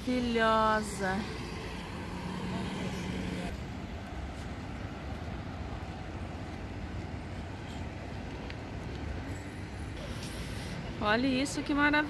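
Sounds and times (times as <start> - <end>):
traffic engine and tyre noise: 0.0 - 12.0
car driving past: 1.2 - 3.5.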